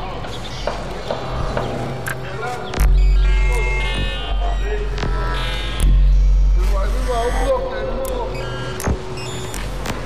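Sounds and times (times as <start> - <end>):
low bass: 1.4 - 10.0.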